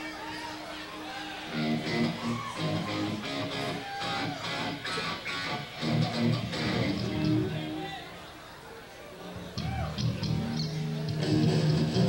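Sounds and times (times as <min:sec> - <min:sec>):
electric guitar through amplifier: 0:00.0 - 0:08.2, 0:09.4 - 0:12.0.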